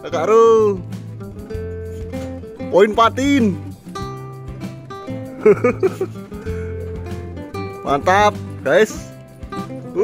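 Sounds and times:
guitar music with bass line: 0:00.0 - 0:10.0.

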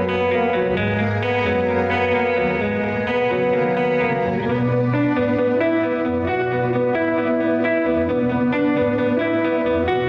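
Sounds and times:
bass guitar: 0:00.0 - 0:10.0
electric guitar lead line: 0:00.0 - 0:10.0.

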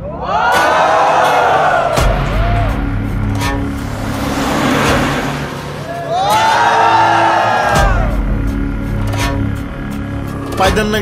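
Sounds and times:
noisy whoosh: 0:01.8 - 0:08.9.

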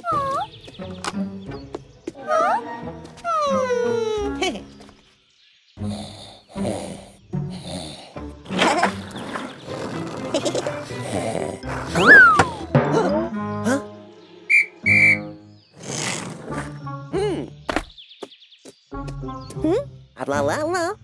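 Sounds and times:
cartoon background music: 0:00.0 - 0:04.9, 0:05.8 - 0:17.9, 0:18.9 - 0:21.0
sliding whistle glide: 0:11.9 - 0:12.6, 0:14.5 - 0:15.2
short high whistle tones: 0:14.5 - 0:15.3.

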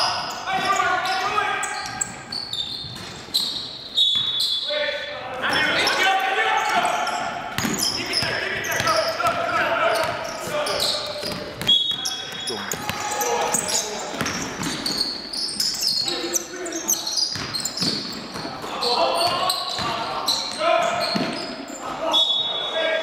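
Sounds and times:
players calling out: 0:05.0 - 0:23.0
basketball bouncing on wooden floor: 0:07.6 - 0:10.3, 0:14.1 - 0:15.0.

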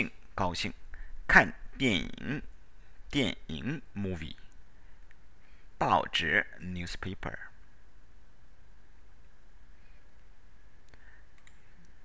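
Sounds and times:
faint electrical hum: 0:00.0 - 0:12.0
computer mouse clicks: 0:10.8 - 0:12.0.

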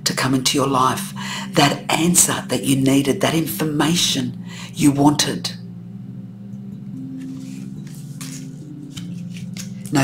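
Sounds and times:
soft background music: 0:00.0 - 0:10.0
cards rustling and sliding: 0:07.2 - 0:09.9.

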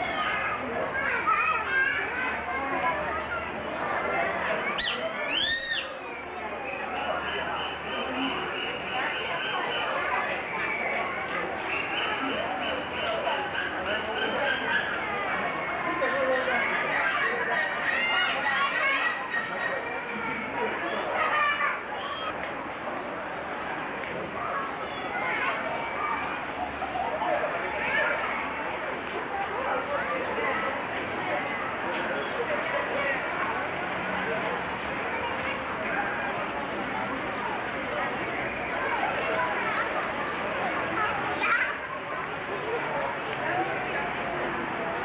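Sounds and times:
children talking and calling out: 0:00.0 - 0:45.0
murmur of people: 0:00.0 - 0:45.0.

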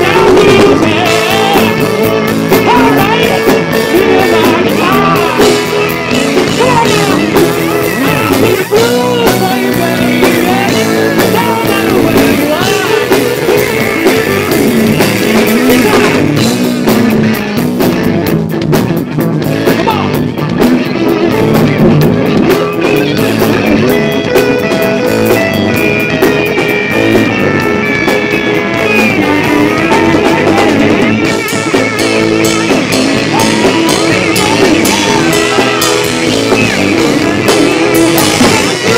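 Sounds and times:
blues-rock band playing: 0:00.0 - 0:38.9
electric guitar bent lead notes: 0:00.0 - 0:38.9.

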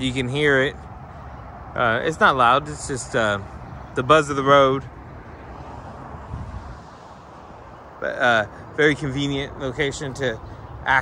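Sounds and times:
distant highway traffic buzz: 0:00.0 - 0:11.0.

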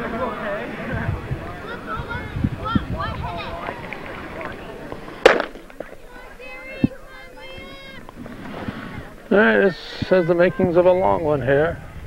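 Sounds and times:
voices talking: 0:00.0 - 0:12.0
starter's pistol shot: 0:05.2 - 0:05.7.

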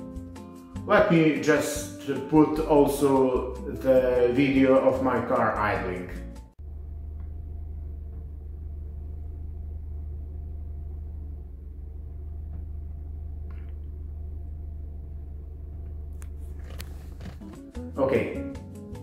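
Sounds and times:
car engine idling: 0:06.6 - 0:17.9.

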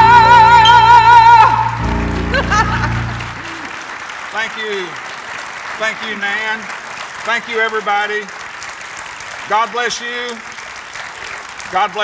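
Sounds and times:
band's held chord: 0:00.0 - 0:04.0
audience applauding and cheering: 0:00.0 - 0:12.0.

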